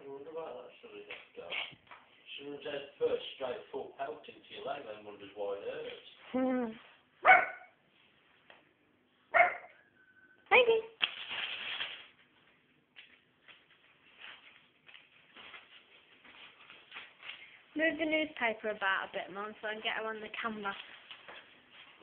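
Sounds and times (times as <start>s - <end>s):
puppy barking: 7.2s - 7.8s, 9.3s - 9.8s
rustling of newspaper: 11.0s - 18.1s, 19.8s - 22.0s.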